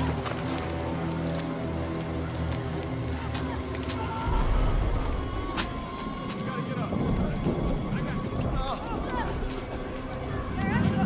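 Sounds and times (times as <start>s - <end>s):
deep rumble and crackling: 0.0s - 11.0s
low music drone: 0.0s - 11.0s.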